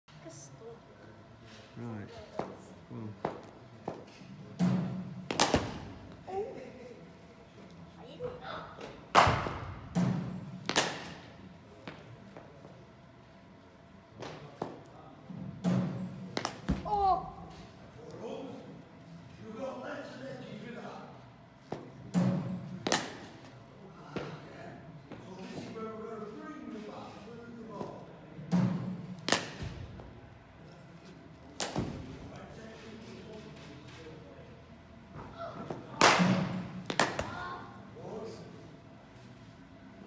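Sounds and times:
cricket ball cracking on bat: 10.6s - 11.2s, 16.3s - 16.9s, 36.0s - 37.4s.

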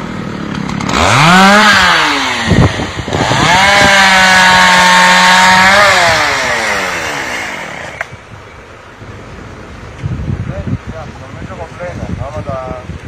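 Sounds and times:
chainsaw revving: 0.0s - 8.1s.

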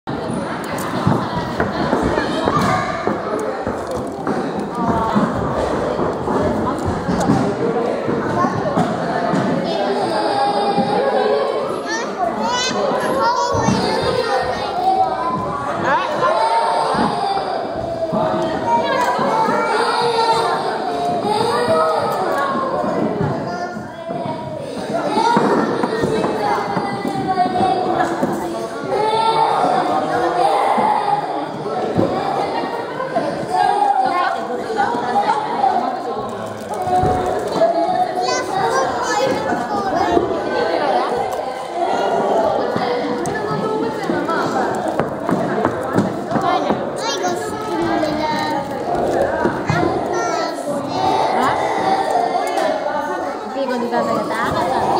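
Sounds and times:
adults talking: 0.0s - 54.9s
children chattering: 0.0s - 54.9s.

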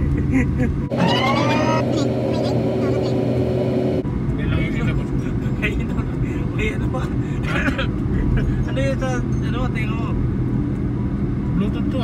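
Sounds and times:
road and engine rumble: 0.0s - 12.0s
rising whine: 0.9s - 4.4s.

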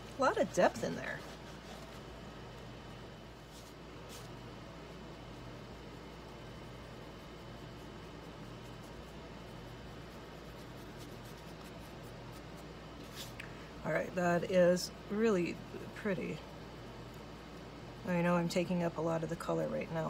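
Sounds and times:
paintbrush scratching on paper: 0.2s - 2.2s, 3.4s - 13.3s.

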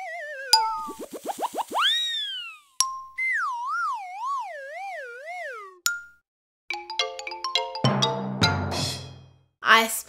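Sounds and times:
rising cartoon chirps: 0.0s - 5.8s
warbling tone sliding downward: 0.0s - 5.8s.

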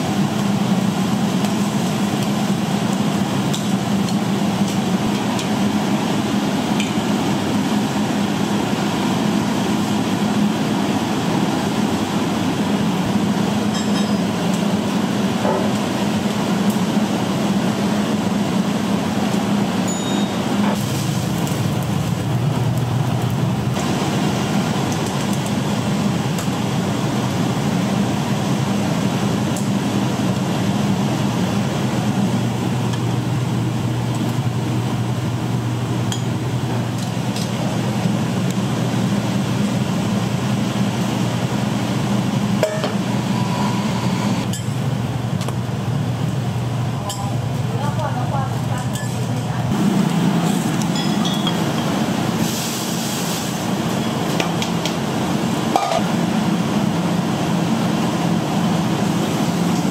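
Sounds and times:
kitchen equipment roar and hum: 0.0s - 59.9s
utensils and dishes clinking: 13.7s - 14.4s, 19.8s - 20.8s, 48.8s - 49.4s, 50.4s - 52.0s, 55.7s - 56.1s.

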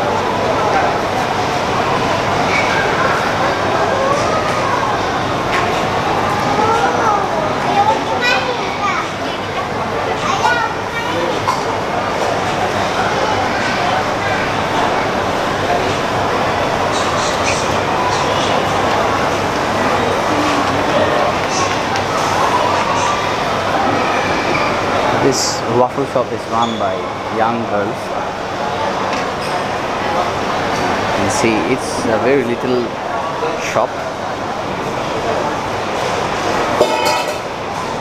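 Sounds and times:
crowd noise: 0.0s - 38.0s
loud background din: 0.0s - 38.0s
people chattering: 0.0s - 38.0s.

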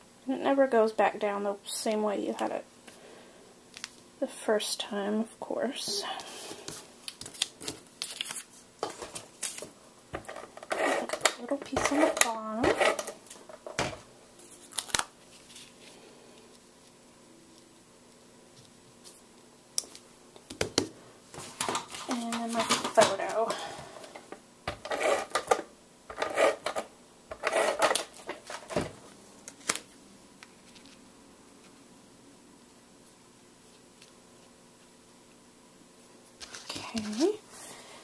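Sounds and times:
paper rustling and sliding: 14.4s - 16.0s.

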